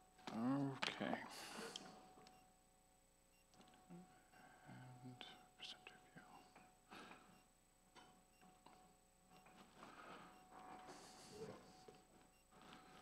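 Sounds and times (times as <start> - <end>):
person whispering: 0.3 - 1.9, 4.6 - 6.7, 10.8 - 11.9.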